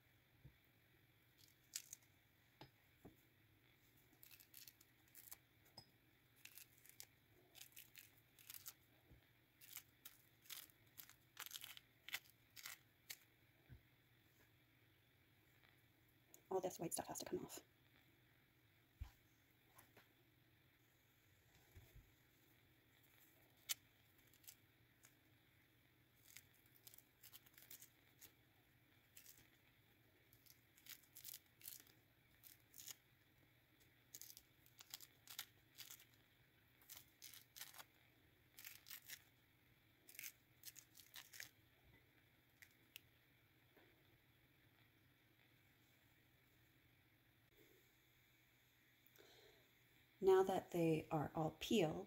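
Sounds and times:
orange peel tearing and crackling: 1.4s - 2.1s, 4.1s - 5.4s, 6.4s - 8.9s, 9.5s - 13.3s, 23.1s - 25.2s, 26.1s - 28.4s, 29.0s - 29.7s, 30.3s - 33.1s, 34.0s - 39.3s, 40.0s - 41.6s.

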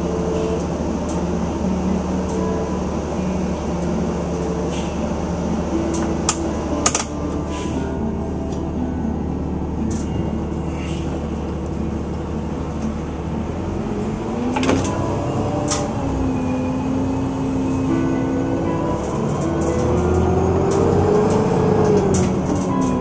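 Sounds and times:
vehicle engine hum from cabin: 0.0s - 23.0s.

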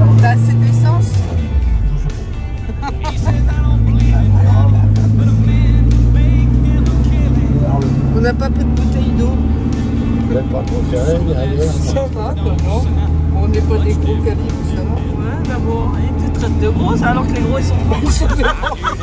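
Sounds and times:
car engine drone inside cabin: 0.0s - 19.0s.

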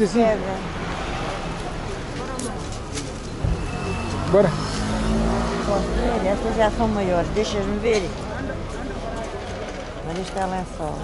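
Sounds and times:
motor vehicle passing: 2.8s - 10.0s.

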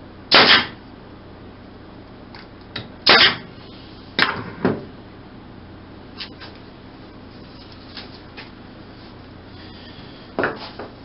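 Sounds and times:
pneumatic nailer firing: 0.3s - 0.8s, 3.0s - 3.5s.

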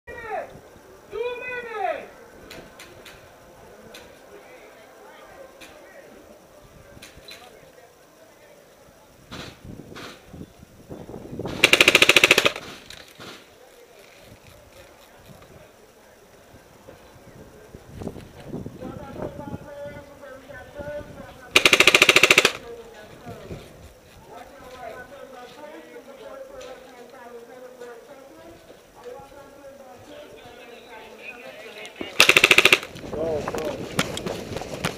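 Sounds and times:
paintball marker rapid firing: 11.5s - 12.9s, 21.6s - 22.6s, 32.1s - 33.0s
distant gunshots: 32.2s - 32.9s.

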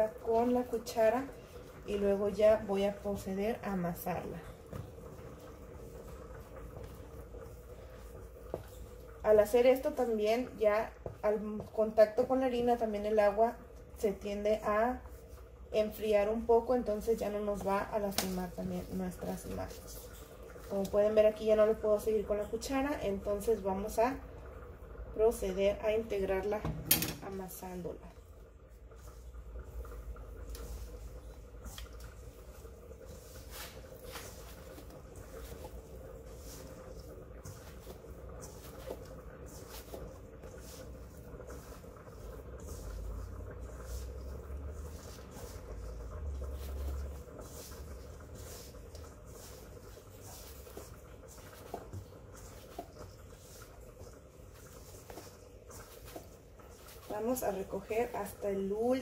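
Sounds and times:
hands kneading dough in a bowl: 0.0s - 59.0s.

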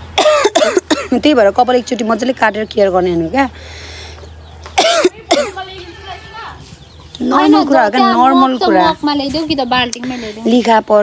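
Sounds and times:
person coughing: 0.2s - 1.2s, 4.8s - 5.6s.

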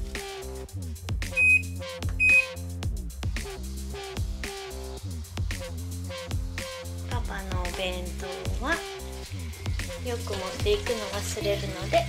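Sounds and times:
background music: 0.0s - 12.0s
short high electronic beeps: 1.4s - 2.6s.

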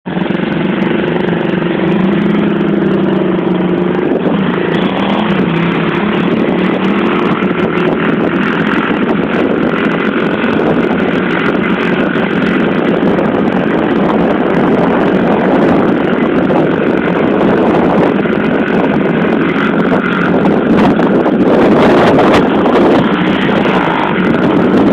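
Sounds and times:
loud rushing noise: 0.1s - 24.9s
small motorbike engine running: 0.1s - 24.9s.

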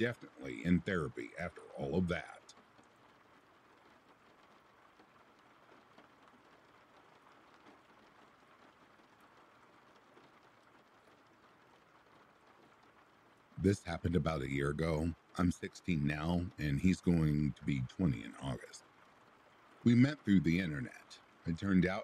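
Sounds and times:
faint rain hiss: 0.0s - 22.0s.

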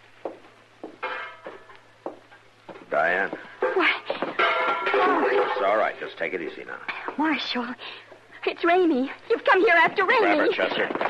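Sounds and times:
footsteps approaching: 0.0s - 11.0s.

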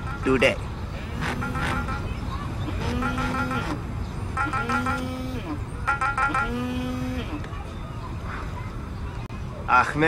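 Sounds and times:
mobile phone ringtone: 1.2s - 2.2s, 2.8s - 3.8s, 4.4s - 5.3s, 5.9s - 6.6s.

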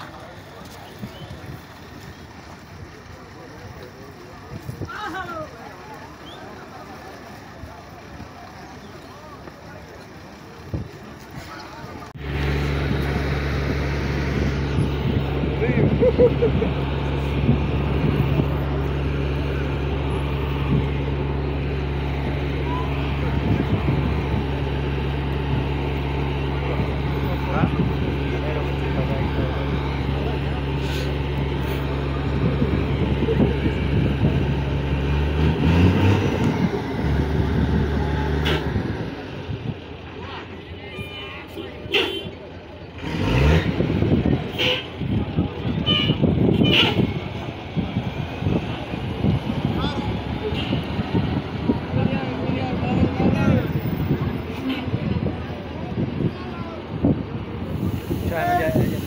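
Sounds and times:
crowd voices: 0.0s - 59.0s
truck engine idling and revving: 0.0s - 59.0s.

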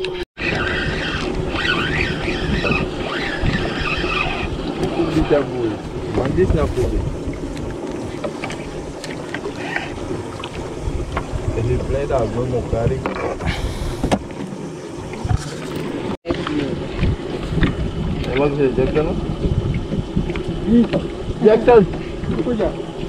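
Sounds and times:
wind buffeting microphone: 0.0s - 23.0s
voices talking: 1.6s - 7.1s.

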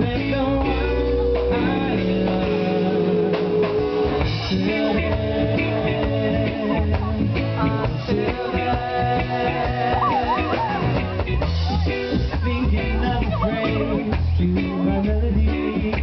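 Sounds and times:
person singing long notes: 0.0s - 11.0s
acoustic guitar strumming: 0.0s - 14.8s
reggae band playing: 0.0s - 16.0s.

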